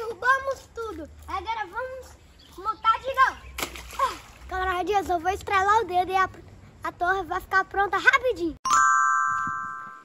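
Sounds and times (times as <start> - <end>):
children talking and calling out: 0.0 - 8.6
water splash: 3.5 - 4.7.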